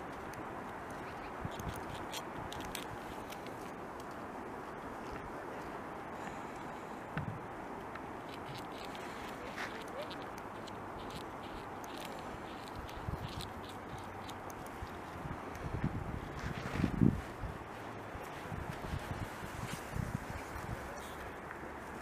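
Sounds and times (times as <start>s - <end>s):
beaver gnawing bark: 0.0s - 4.3s, 7.8s - 15.7s.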